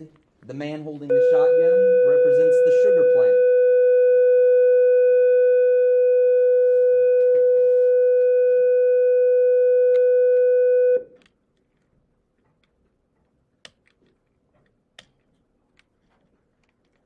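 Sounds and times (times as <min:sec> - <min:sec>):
steady electronic beep tone: 0:01.1 - 0:11.1.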